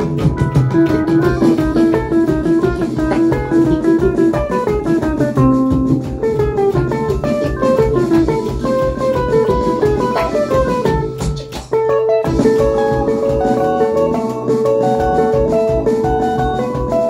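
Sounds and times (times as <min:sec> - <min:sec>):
band playing fast tune: 0:00.0 - 0:17.0
electric guitar: 0:00.0 - 0:17.0.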